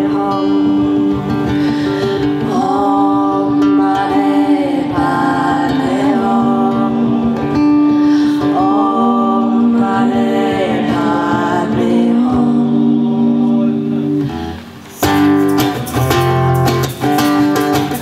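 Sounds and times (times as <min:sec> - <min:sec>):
woman singing: 0:00.0 - 0:14.0
acoustic guitar: 0:00.0 - 0:18.0.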